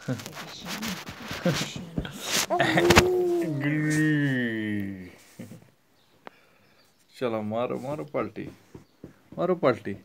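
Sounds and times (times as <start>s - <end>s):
adult's drawn-out playful call: 2.2s - 4.7s.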